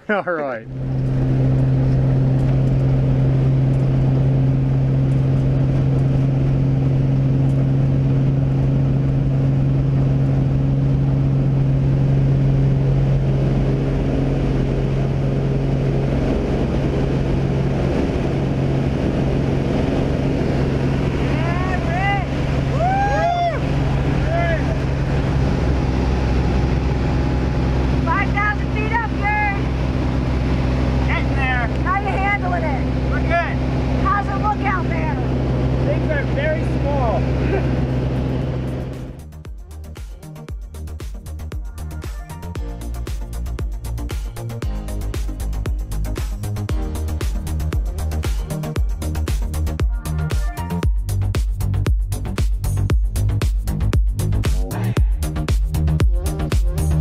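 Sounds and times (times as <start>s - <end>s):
propeller plane engine drone: 0.0s - 57.0s
rushing air: 0.0s - 57.0s
shouted voices: 21.4s - 24.8s.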